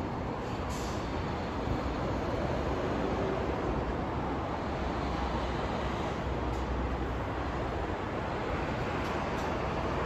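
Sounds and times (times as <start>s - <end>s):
road traffic roar: 0.0s - 10.0s.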